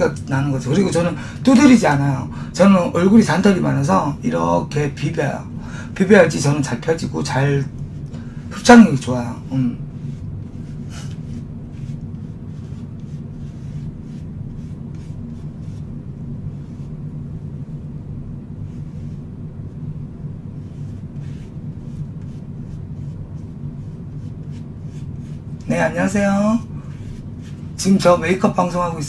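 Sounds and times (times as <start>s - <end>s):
low hum: 3.8s - 29.0s.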